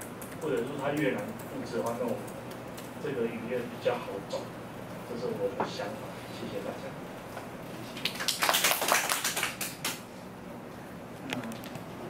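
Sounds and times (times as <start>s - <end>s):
audience applauding: 8.0s - 10.0s.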